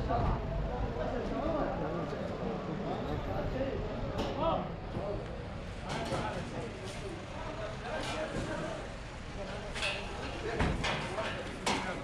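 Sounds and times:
low background noise: 0.0s - 12.0s.

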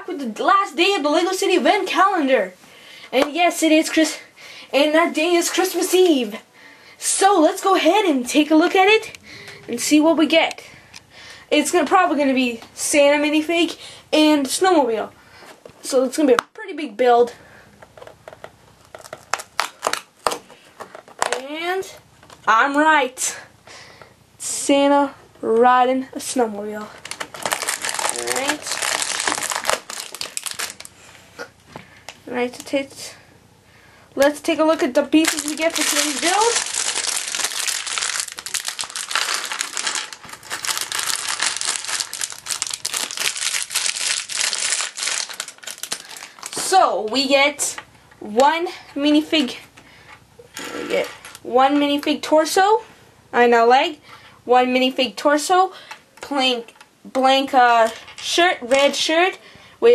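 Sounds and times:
sharp crinkling crackles: 17.8s - 21.4s, 26.8s - 31.1s, 35.1s - 46.8s
cardboard tearing open: 27.0s - 30.9s, 35.2s - 46.6s.

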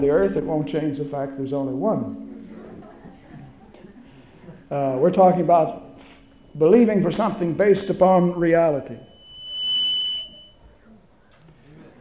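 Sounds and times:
sound system squealing: 5.7s - 10.8s.

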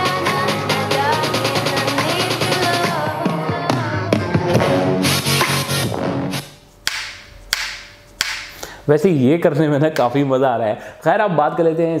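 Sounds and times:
music with drums from speaker: 0.0s - 6.4s.

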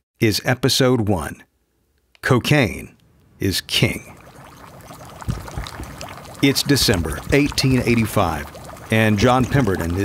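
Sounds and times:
liquid pouring and trickling: 3.8s - 10.0s
soft low thuds: 5.2s - 6.0s.

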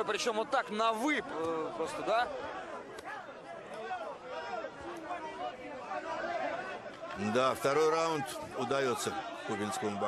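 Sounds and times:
several voices chattering: 0.0s - 10.0s.

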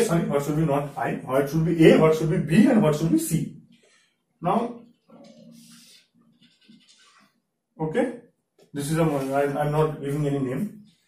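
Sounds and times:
marker dragging on whiteboard: 4.8s - 7.4s, 8.8s - 9.8s.

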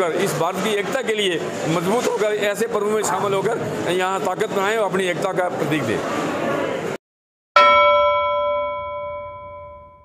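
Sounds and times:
bell chime: 7.6s - 10.0s.

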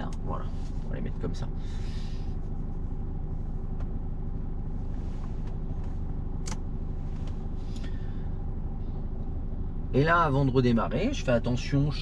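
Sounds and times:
car engine idling: 0.0s - 12.0s
sharp click: 6.4s - 6.7s.

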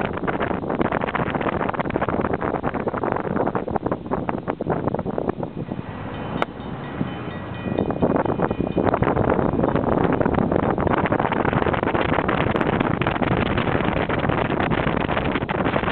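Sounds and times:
road and engine noise: 0.0s - 15.9s
wind buffeting microphone: 0.0s - 15.9s.

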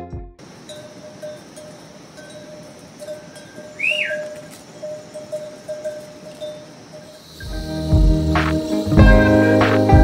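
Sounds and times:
yak bells clinking: 0.4s - 7.7s
rising and falling whistle: 3.8s - 4.3s.

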